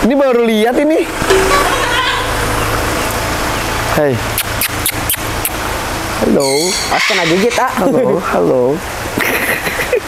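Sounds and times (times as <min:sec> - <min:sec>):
even wash of noise: 0:00.0 - 0:06.2
low machine hum: 0:00.0 - 0:06.4.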